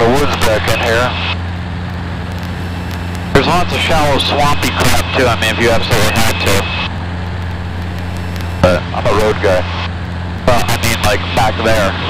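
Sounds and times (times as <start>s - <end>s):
small plane engine droning: 0.0s - 12.0s.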